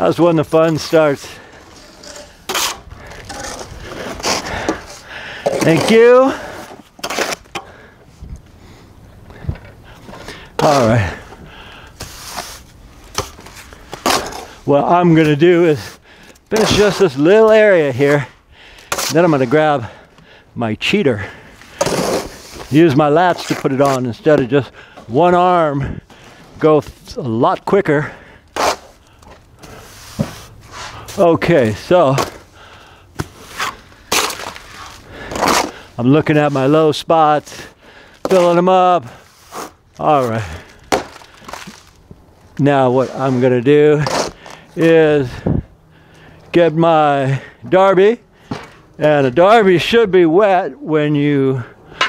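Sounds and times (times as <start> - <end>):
trowel scraping wet stucco: 0.6 - 7.6, 12.0 - 14.6, 15.8 - 18.2, 18.9 - 19.6, 21.7 - 24.4, 28.5 - 32.4, 33.3 - 36.7, 38.2 - 41.9, 42.8 - 45.0.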